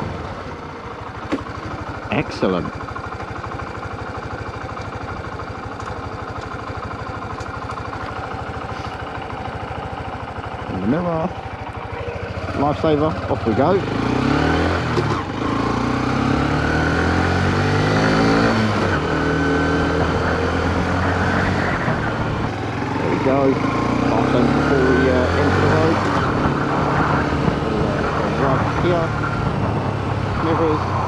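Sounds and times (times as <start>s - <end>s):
motorcycle engine accelerating: 0.0s - 31.0s
wind rushing over microphone: 26.0s - 31.0s.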